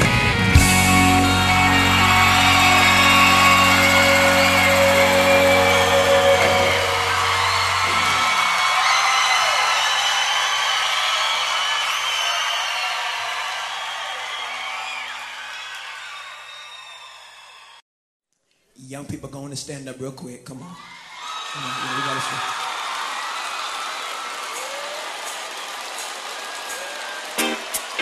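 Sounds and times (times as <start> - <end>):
background music: 0.0 - 8.2, 25.2 - 28.0.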